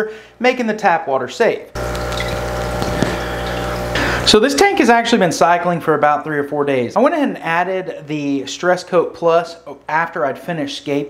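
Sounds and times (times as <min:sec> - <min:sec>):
water churning and bubbling: 0:01.8 - 0:04.0
aquarium filter pump humming: 0:01.8 - 0:04.7.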